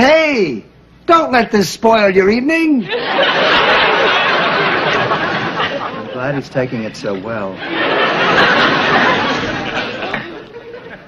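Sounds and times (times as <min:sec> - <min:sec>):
studio audience laughing: 0:02.9 - 0:11.0.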